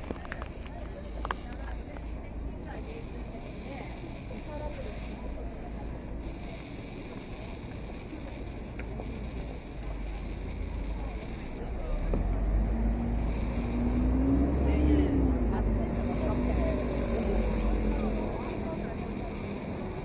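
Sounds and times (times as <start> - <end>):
passers-by voices: 0.0 - 20.0
motor vehicle passing: 9.0 - 20.0.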